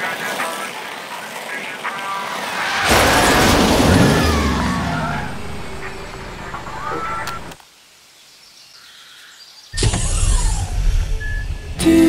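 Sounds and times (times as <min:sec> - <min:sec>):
outdoor ambience: 0:00.0 - 0:12.0
motor vehicle passing: 0:02.0 - 0:07.5.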